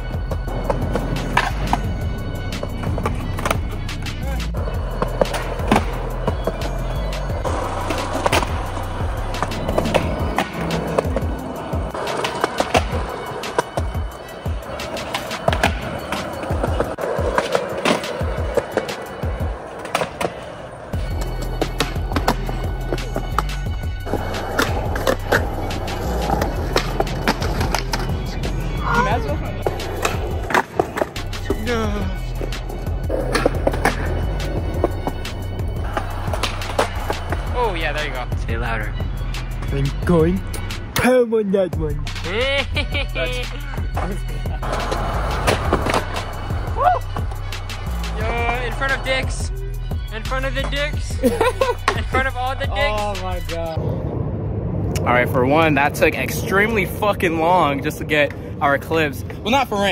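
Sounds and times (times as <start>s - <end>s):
background music with bass line: 0.0s - 18.6s, 21.0s - 53.8s
skateboard wheels rolling on concrete: 0.0s - 40.9s, 42.4s - 59.9s
skateboard clacks: 0.2s - 2.0s, 2.6s - 28.3s, 29.6s - 31.5s, 32.4s - 38.2s, 43.9s - 49.4s, 51.7s - 52.3s.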